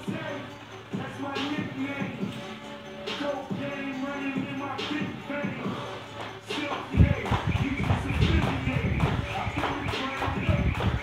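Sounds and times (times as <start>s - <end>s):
music with vocals: 0.0s - 11.0s
feet landing: 7.0s - 11.0s
jump rope slapping floor: 7.0s - 11.0s.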